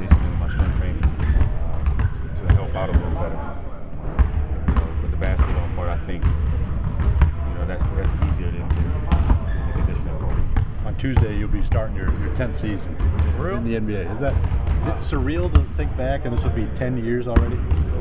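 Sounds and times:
man talking: 0.0s - 1.2s, 2.1s - 3.6s, 5.0s - 6.3s, 7.5s - 8.8s, 9.8s - 17.7s
basketballs bouncing on gym floor: 0.0s - 3.2s, 4.1s - 18.0s.

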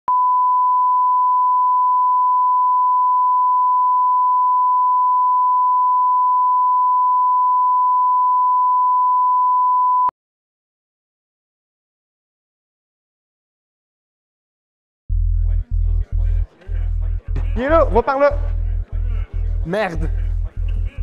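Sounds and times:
steady high test tone beep: 0.1s - 10.1s.

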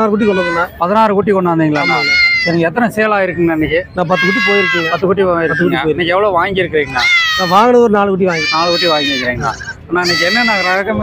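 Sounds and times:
man talking: 0.0s - 11.0s
goat kids bleating: 8.3s - 10.8s.

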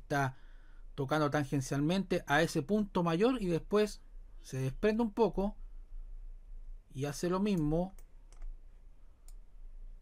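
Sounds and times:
low electrical hum: 0.0s - 10.0s
computer mouse clicks: 7.5s - 8.6s, 9.2s - 9.5s.

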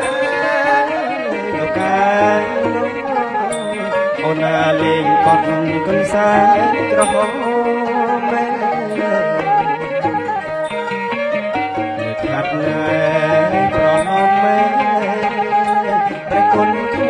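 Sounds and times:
person singing wavering melody: 0.0s - 17.0s
traditional band music: 0.0s - 17.0s.

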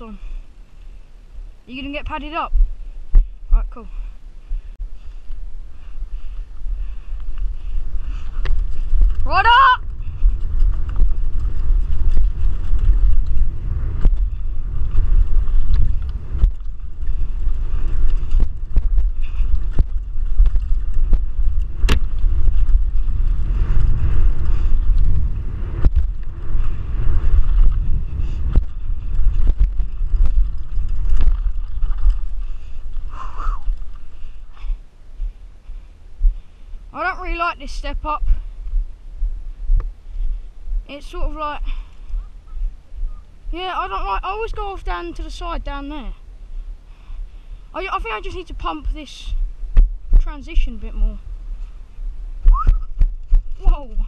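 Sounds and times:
bike tyre noise on dirt: 0.0s - 54.0s
wind rumble on microphone: 0.0s - 54.0s
bike knocking and rattling: 5.3s - 35.4s.

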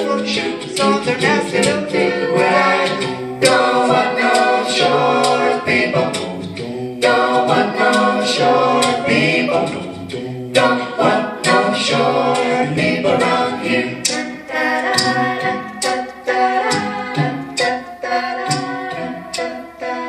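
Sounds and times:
group singing in harmony: 0.0s - 20.0s.

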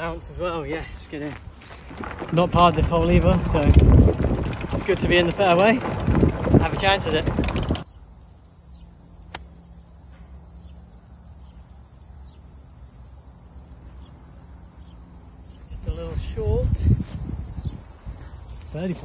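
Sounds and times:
insects chorus: 0.0s - 19.0s.

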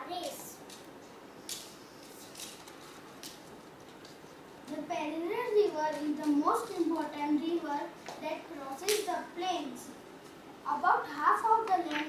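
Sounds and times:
paper sheets rustling: 1.5s - 4.4s.

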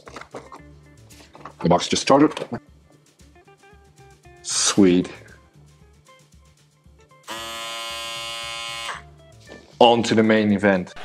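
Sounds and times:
electric shaver buzzing: 7.2s - 9.1s.

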